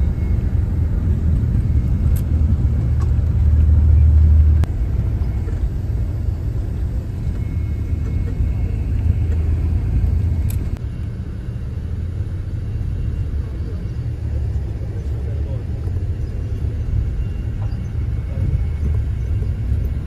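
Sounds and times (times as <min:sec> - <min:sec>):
vehicle rumble from inside cabin: 0:00.0 - 0:20.0.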